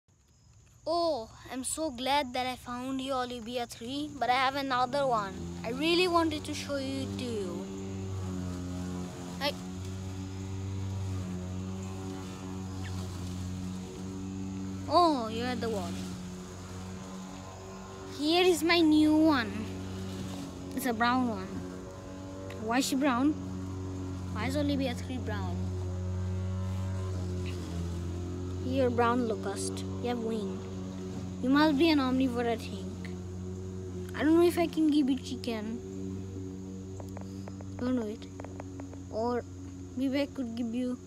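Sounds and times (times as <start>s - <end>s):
low mechanical hum: 0.2s - 41.0s.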